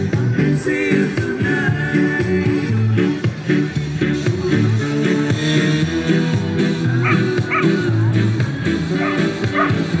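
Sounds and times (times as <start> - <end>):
upbeat music with bass and guitar: 0.0 - 10.0
dog yapping: 9.0 - 9.8.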